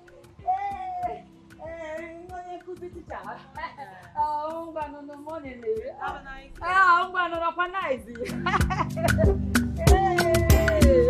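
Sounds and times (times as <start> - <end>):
steady ticking beat: 0.0 - 11.0
person singing long notes: 9.8 - 11.0.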